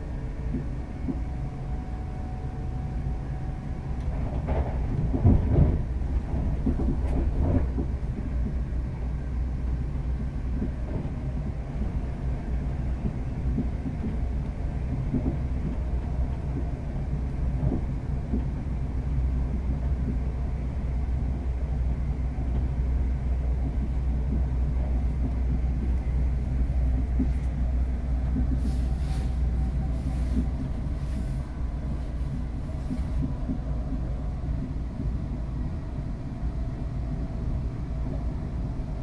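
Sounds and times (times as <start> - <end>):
train rumbling inside carriage: 0.0 - 39.0.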